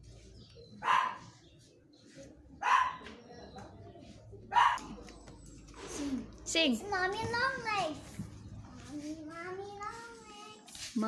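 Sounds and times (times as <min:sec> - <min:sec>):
dog barking: 0:00.8 - 0:01.4, 0:02.6 - 0:03.1, 0:04.5 - 0:04.9.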